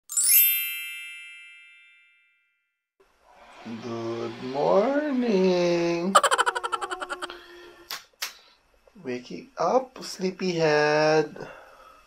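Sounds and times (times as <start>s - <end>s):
bright high chime: 0.1s - 2.5s.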